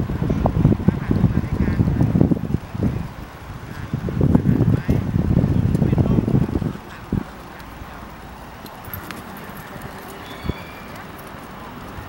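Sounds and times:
horse hoofbeats on sand: 0:03.6 - 0:12.0.

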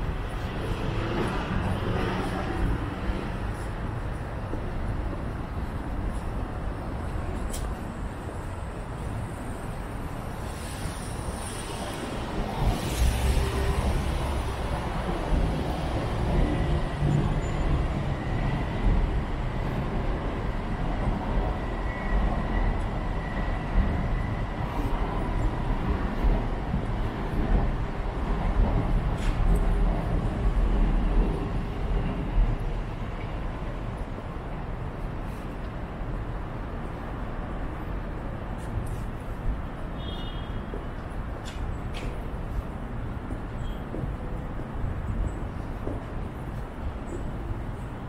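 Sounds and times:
city street traffic rumble: 0:00.0 - 0:48.0.

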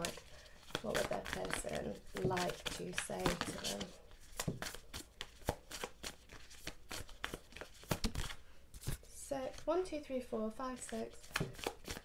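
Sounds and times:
cards being shuffled: 0:00.0 - 0:09.7, 0:10.8 - 0:12.0.

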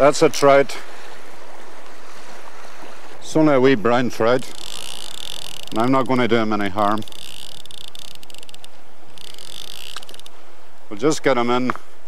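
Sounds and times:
rushing river water: 0:00.0 - 0:11.4
fishing reel ratchet clicking: 0:04.3 - 0:10.4.

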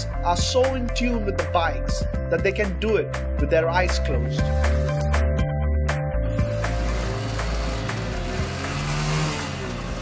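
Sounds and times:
background music with low notes: 0:00.0 - 0:10.0
motorcycle engine revving: 0:06.4 - 0:10.0.

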